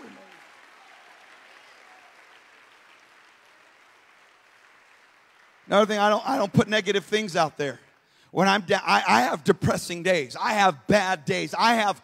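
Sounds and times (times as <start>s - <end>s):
faint applause: 0.0s - 6.6s.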